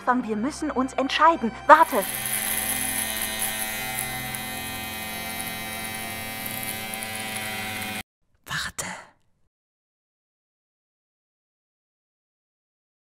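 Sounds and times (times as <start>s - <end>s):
electric shaver humming: 1.7s - 8.0s.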